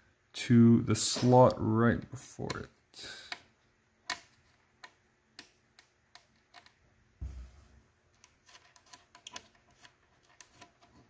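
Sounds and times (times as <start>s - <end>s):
small metal clicks and ticks: 4.0s - 6.8s, 8.2s - 10.9s
dull thump: 7.2s - 7.8s.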